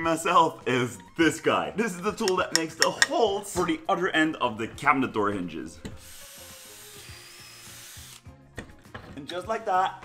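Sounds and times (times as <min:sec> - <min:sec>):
soft background music: 0:00.0 - 0:10.0
drill whirring: 0:06.0 - 0:08.3.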